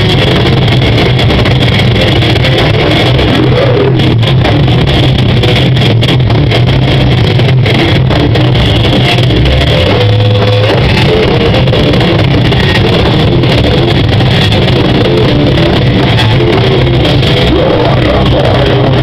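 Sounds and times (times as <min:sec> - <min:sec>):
distorted live metal band: 0:00.0 - 0:19.0.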